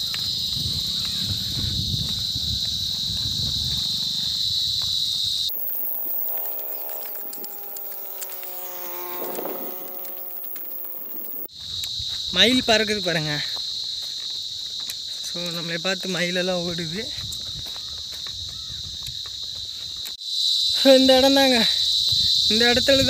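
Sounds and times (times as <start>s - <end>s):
insect chorus: 0.0s - 23.0s.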